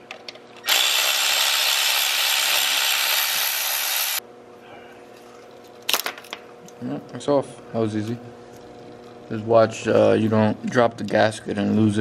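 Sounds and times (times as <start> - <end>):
power ratchet running: 0.6 - 4.2.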